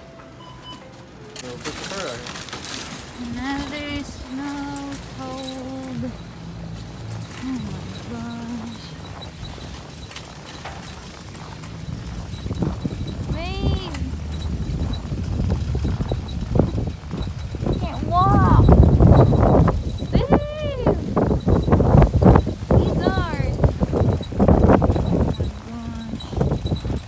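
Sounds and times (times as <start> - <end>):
shopping cart rattling on snow: 0.0 - 27.0.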